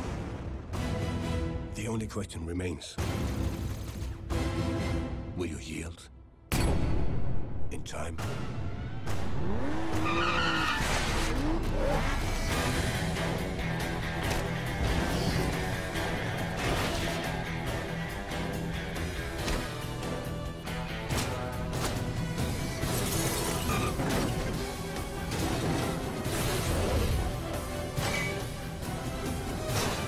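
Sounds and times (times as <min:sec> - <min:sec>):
trailer music: 0:00.0 - 0:30.0
sports car engine revving: 0:09.1 - 0:13.4.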